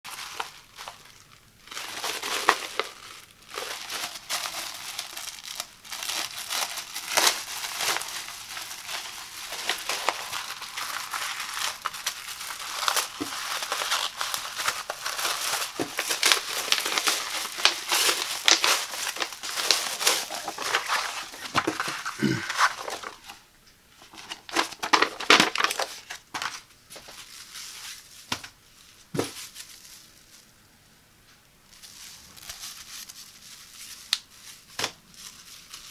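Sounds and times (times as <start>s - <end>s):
plastic shrink wrap crinkling: 0.0s - 23.4s, 24.0s - 30.7s, 31.4s - 35.9s.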